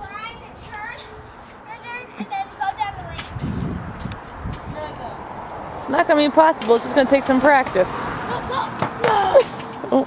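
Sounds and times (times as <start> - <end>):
children's voices: 0.0 - 3.6, 8.2 - 9.6
scooter rolling on concrete: 0.0 - 10.0.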